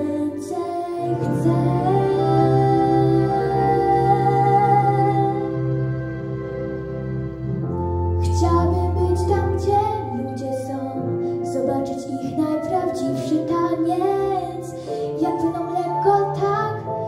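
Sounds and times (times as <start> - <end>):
girl singing slow song: 0.0 - 5.7, 8.2 - 17.0
instrumental backing track: 0.0 - 17.0.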